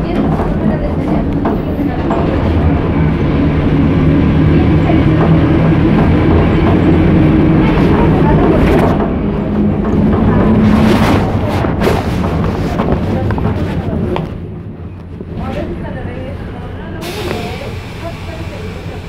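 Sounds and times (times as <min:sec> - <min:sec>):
bus engine drone: 0:00.0 - 0:19.0
road rumble: 0:00.0 - 0:19.0
rattles and knocks: 0:08.4 - 0:14.4.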